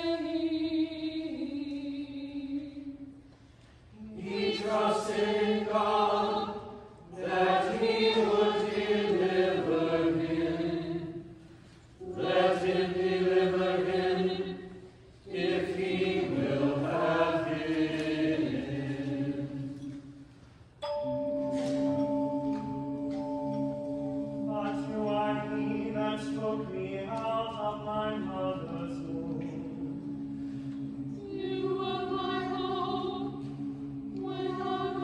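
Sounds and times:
choir chanting a psalm: 3.9s - 20.2s, 20.9s - 35.0s.

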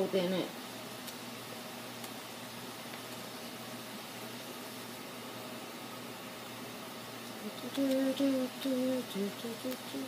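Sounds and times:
faint hum: 0.0s - 10.0s
low room noise hiss: 0.0s - 10.0s.

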